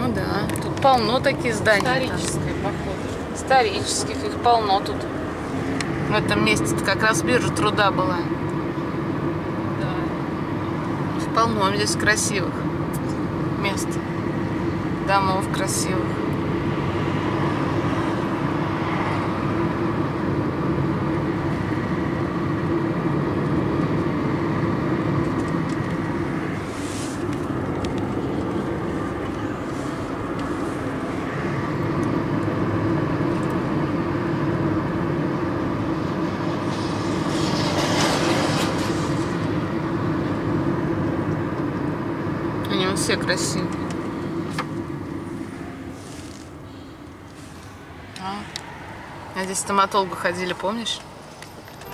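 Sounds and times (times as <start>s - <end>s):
car engine and road noise: 0.0s - 51.9s
short rushes of noise: 36.6s - 39.5s.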